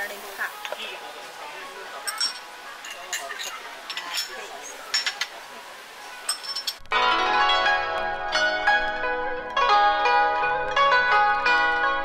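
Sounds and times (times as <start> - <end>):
porcelain cups clinking: 2.0 - 5.4, 6.2 - 6.8
plucked zither music: 6.1 - 12.0.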